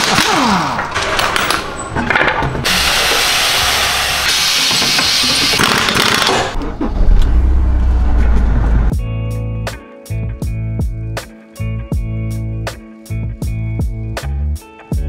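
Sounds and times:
air tools rattling: 0:00.0 - 0:06.6
compressed air hissing: 0:02.7 - 0:05.6
loud low rumble: 0:06.6 - 0:09.0.

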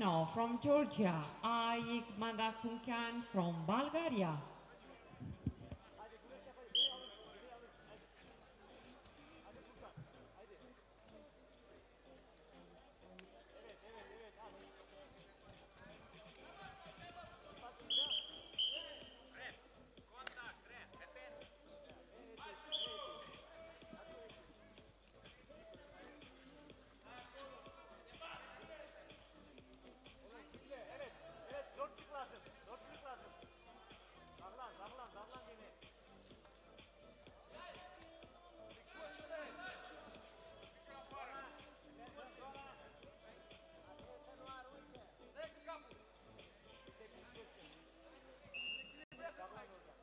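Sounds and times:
shrill whistle blasts: 0:06.7 - 0:07.2, 0:17.9 - 0:19.2, 0:22.7 - 0:23.2, 0:48.5 - 0:49.1.

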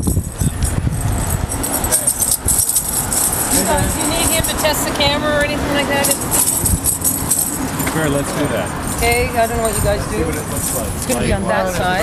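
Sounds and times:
low microphone rumble: 0:00.0 - 0:11.1
indistinct chatter: 0:00.0 - 0:12.0.

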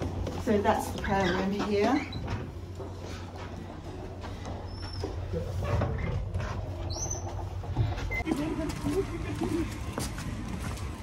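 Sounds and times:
footsteps in a corridor: 0:00.0 - 0:11.0
high squeaks: 0:06.8 - 0:07.5.

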